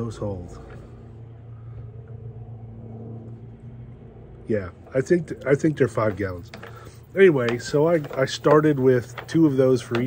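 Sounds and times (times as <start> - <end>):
low rumble: 0.0 - 7.3
low mechanical hum: 0.0 - 10.0.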